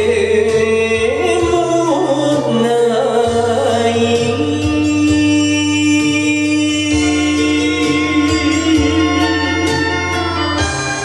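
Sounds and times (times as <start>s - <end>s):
karaoke backing track: 0.0s - 11.0s
man singing a ballad: 0.0s - 11.0s.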